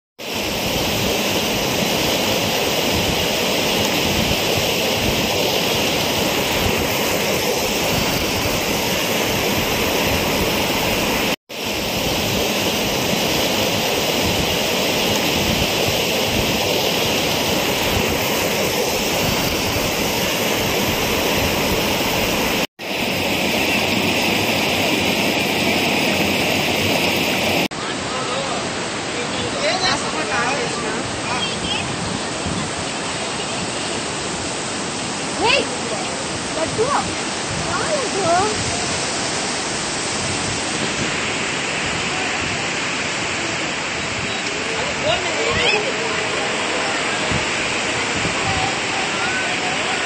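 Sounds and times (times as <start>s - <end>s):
floodwater rushing: 0.2s - 50.0s.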